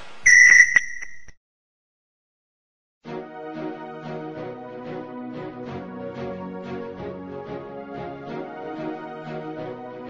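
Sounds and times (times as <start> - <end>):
high whistle-like tone: 0.2 - 1.3
sharp clicks: 0.3 - 1.4.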